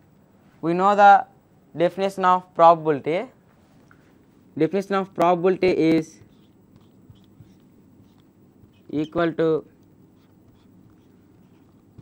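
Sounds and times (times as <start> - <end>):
low room hum: 0.0 - 12.0
marker writing on whiteboard: 5.5 - 12.0.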